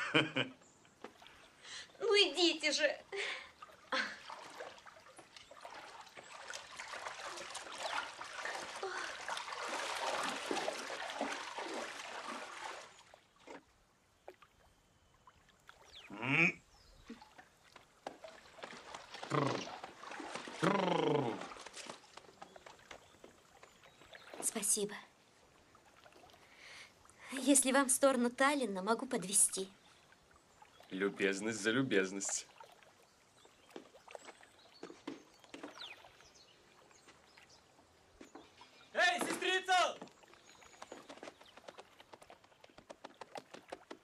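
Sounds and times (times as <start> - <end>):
water splashing from wading: 0.9 - 2.5, 3.1 - 27.9, 29.8 - 44.0
short bursts of voice: 16.1 - 16.6.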